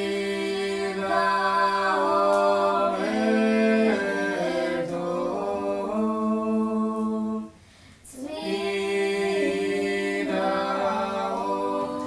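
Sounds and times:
unaccompanied choir singing: 0:00.0 - 0:12.0
breath: 0:07.6 - 0:08.1.

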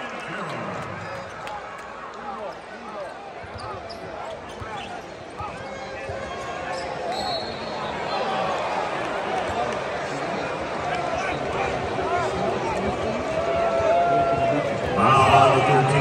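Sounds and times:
crowd chattering: 0:00.0 - 0:16.0.

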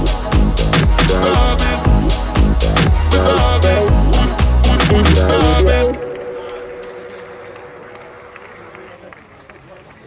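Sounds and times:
held musical tone: 0:00.2 - 0:09.2.

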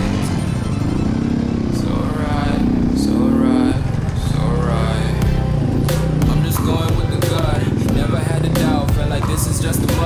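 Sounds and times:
two-stroke motorcycle engine: 0:00.0 - 0:10.0.

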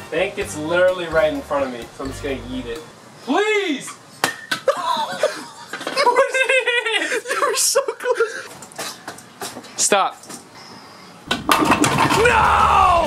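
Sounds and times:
people laughing: 0:04.6 - 0:08.6.

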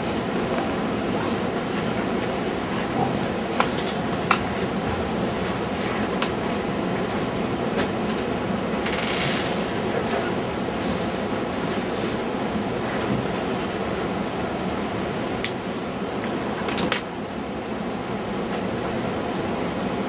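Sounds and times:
low mechanical room hum: 0:00.0 - 0:20.0.

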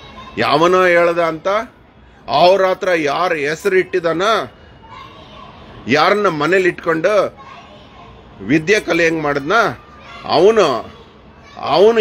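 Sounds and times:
man speaking: 0:02.3 - 0:04.5, 0:05.9 - 0:07.3, 0:08.4 - 0:10.9.

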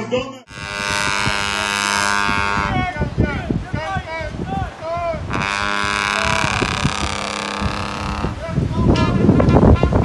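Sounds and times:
voices: 0:00.0 - 0:10.0
brass horns holding buzzy chord: 0:00.5 - 0:02.9, 0:05.3 - 0:10.0.

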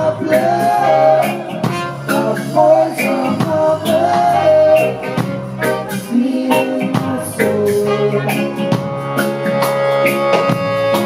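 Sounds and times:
reggae band playing: 0:00.0 - 0:11.0.

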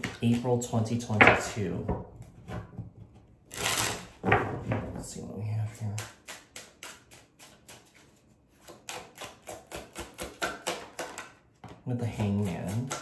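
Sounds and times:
cards being shuffled: 0:03.5 - 0:04.1.

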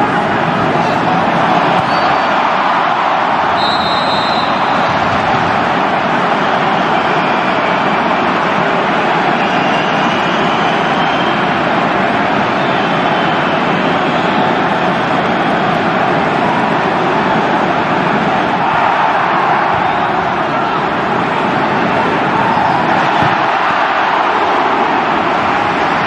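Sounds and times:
loud steady rushing noise: 0:00.0 - 0:26.0.

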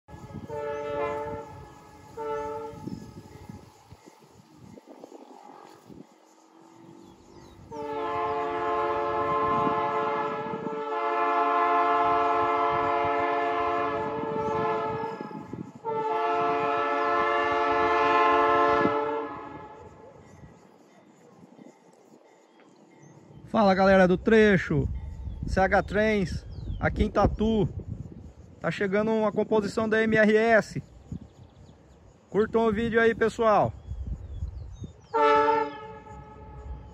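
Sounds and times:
locomotive air horn blasts: 0:00.1 - 0:03.5, 0:07.7 - 0:20.1, 0:35.1 - 0:36.9.

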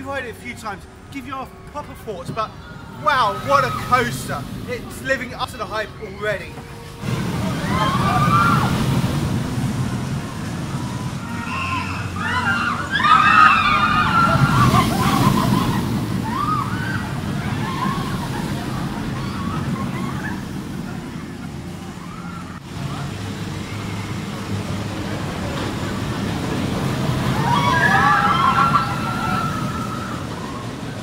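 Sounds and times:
roller coaster rumbling on track: 0:00.0 - 0:31.0
riders screaming and shouting: 0:02.1 - 0:05.0, 0:06.0 - 0:31.0.

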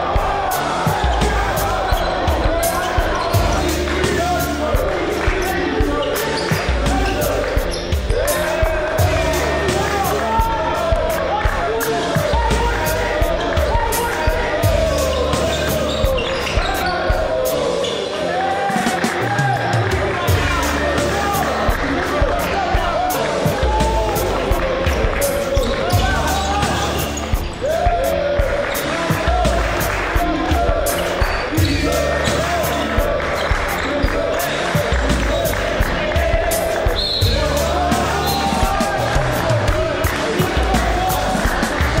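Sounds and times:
deep bass: 0:00.0 - 0:06.0, 0:06.6 - 0:17.3, 0:19.6 - 0:28.6, 0:34.8 - 0:42.0
drum beat: 0:00.0 - 0:17.8, 0:18.7 - 0:42.0.

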